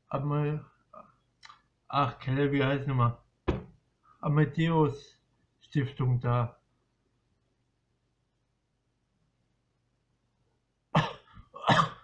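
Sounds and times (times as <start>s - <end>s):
man coughing: 10.9s - 12.0s.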